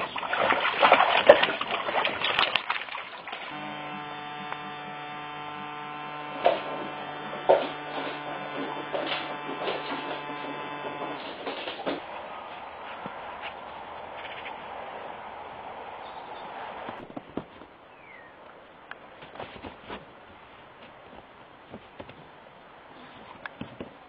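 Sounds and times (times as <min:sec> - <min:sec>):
water splashing in a pool: 0:00.0 - 0:03.6
steady electrical hum: 0:03.2 - 0:23.5.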